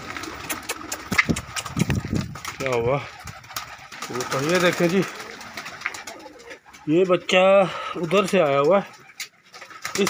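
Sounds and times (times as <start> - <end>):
pigeons cooing softly: 0.0 - 10.0
man talking: 2.6 - 3.2, 4.0 - 5.2, 6.8 - 9.0.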